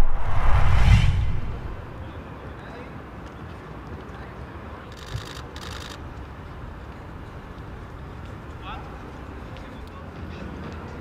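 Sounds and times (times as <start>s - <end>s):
deep rumble: 0.0s - 2.2s
whoosh: 0.0s - 2.2s.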